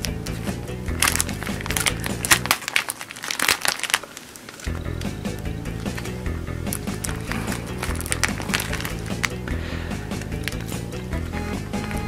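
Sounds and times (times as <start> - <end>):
plastic album pages rustling: 0.0 - 9.5, 10.1 - 11.1.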